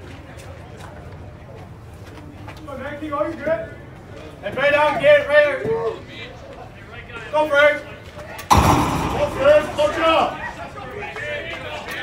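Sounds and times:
crowd shout: 0:08.6 - 0:11.8.

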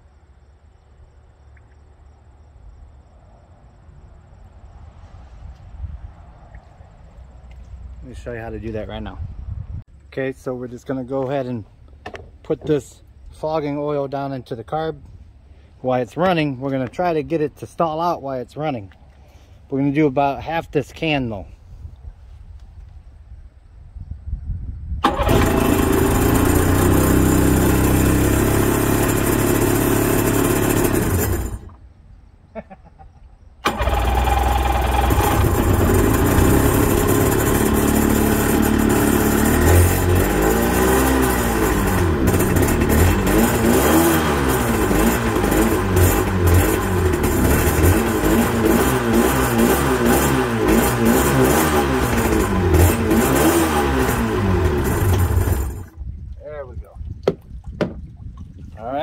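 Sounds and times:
two-stroke jet ski engine running: 0:25.1 - 0:31.8, 0:33.7 - 0:56.0.

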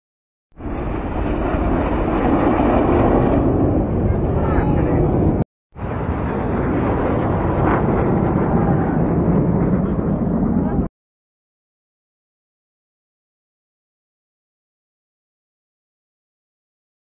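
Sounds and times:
jets flying past: 0:00.6 - 0:10.9
crowd voices: 0:03.7 - 0:05.4.

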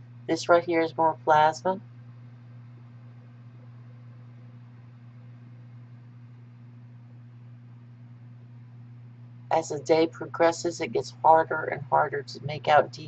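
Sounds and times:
low microphone hum with hiss: 0:00.0 - 0:13.0.

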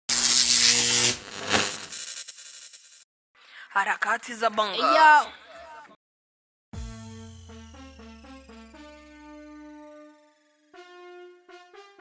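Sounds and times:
buzzing hiss: 0:00.1 - 0:02.9.

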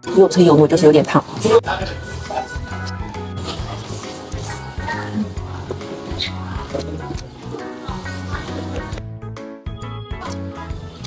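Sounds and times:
music with repeating bass line: 0:01.4 - 0:11.0.

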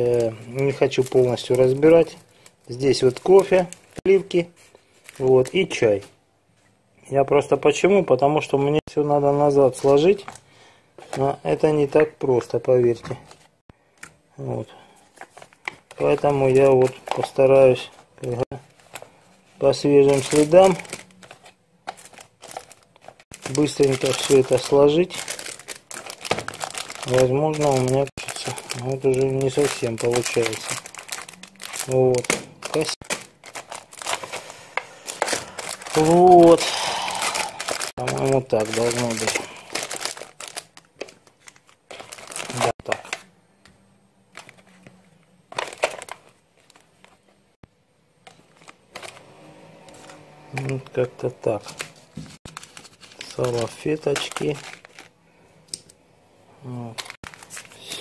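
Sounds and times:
packets rustling: 0:15.0 - 0:43.3, 0:44.3 - 0:47.2, 0:48.2 - 0:55.2, 0:56.9 - 0:58.0.

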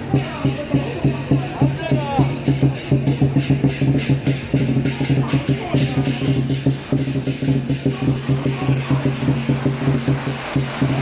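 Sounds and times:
cymbals crashing: 0:00.0 - 0:11.0
large drum beaten fast: 0:00.0 - 0:11.0.

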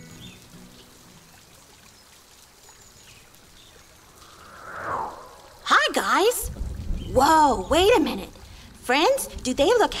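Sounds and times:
light rain dripping: 0:00.0 - 0:10.0.

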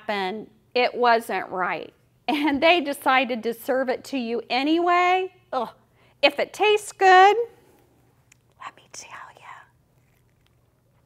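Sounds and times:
woman whispering: 0:08.6 - 0:09.8.

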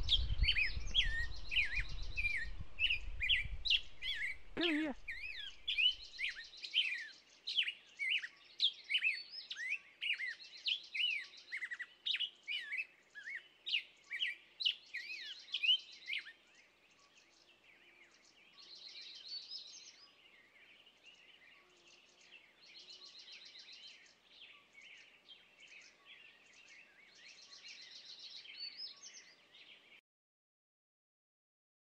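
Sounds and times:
sharp falling bird chirps: 0:00.0 - 0:06.0.

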